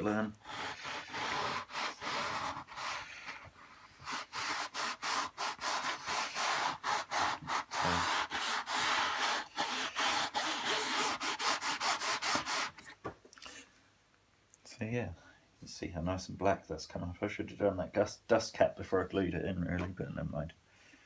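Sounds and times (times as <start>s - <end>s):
cloth rubbing speaker cone: 0.0s - 13.0s.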